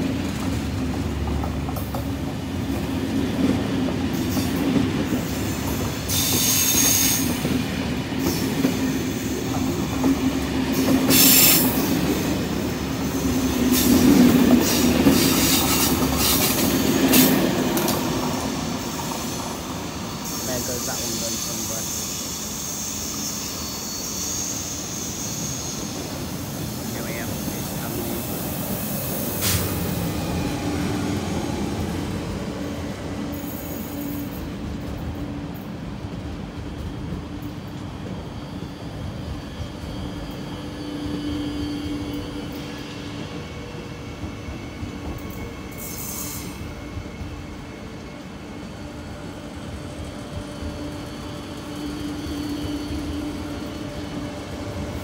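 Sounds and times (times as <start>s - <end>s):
passing train hum and rumble: 0.0s - 55.0s
brief hissing: 29.3s - 29.8s.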